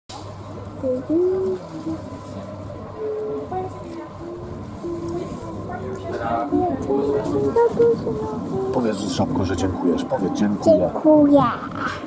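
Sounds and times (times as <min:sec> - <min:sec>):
train rumbling inside carriage: 0:00.1 - 0:12.0.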